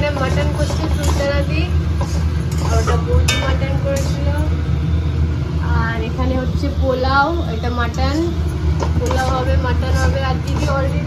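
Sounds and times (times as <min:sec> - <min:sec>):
people talking: 0:00.0 - 0:01.8, 0:02.6 - 0:04.6, 0:05.6 - 0:11.0
metal spoon stirring in pan: 0:00.0 - 0:04.6, 0:07.9 - 0:11.0.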